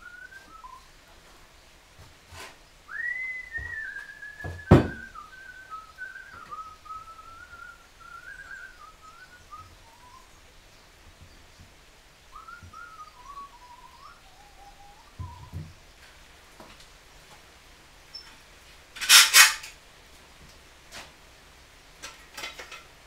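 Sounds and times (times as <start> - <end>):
person whistling a tune: 0.0 - 0.8, 2.9 - 10.2, 12.4 - 15.6
sharp knocks: 4.4 - 5.1.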